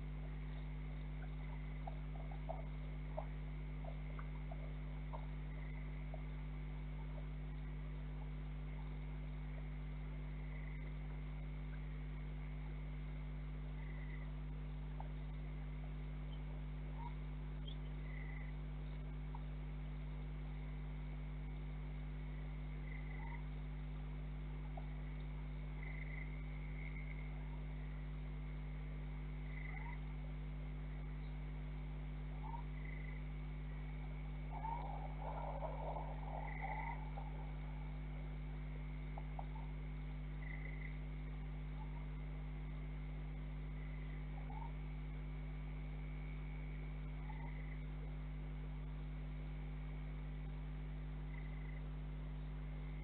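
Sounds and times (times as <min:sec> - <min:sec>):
faint night animal chirps: 0:00.0 - 0:53.0
low electrical hum: 0:00.0 - 0:53.0
high-pitched animal calls: 0:01.2 - 0:06.3, 0:16.9 - 0:17.2, 0:29.5 - 0:30.0, 0:32.3 - 0:33.2, 0:33.8 - 0:41.0, 0:44.3 - 0:44.8, 0:47.2 - 0:47.8.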